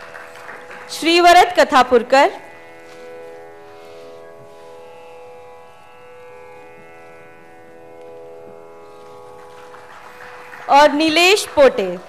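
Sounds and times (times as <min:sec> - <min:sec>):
tanpura drone: 0:00.0 - 0:12.0.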